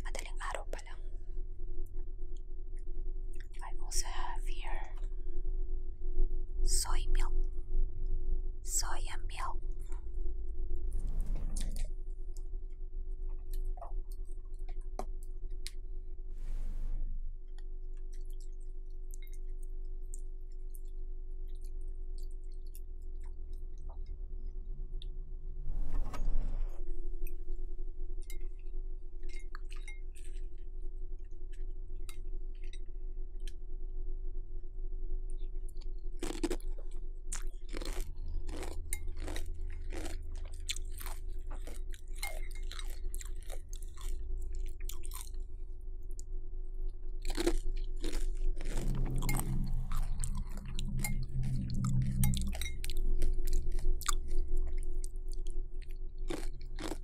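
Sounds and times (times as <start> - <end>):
low hum: 0.0 - 57.0
crunching and chewing cereal: 17.5 - 24.0, 28.4 - 33.6, 35.4 - 46.3, 47.0 - 57.0.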